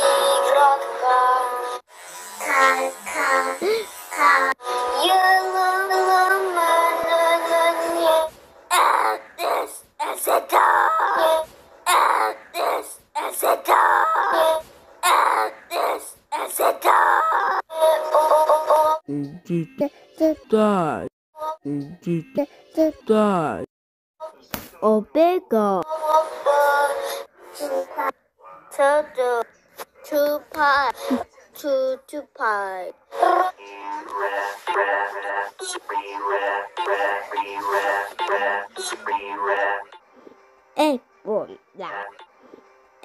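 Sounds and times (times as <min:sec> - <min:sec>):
synthetic singing voice: 0:00.0 - 0:01.8, 0:02.4 - 0:24.4, 0:25.4 - 0:40.0
person making wordless sounds: 0:19.1 - 0:23.7.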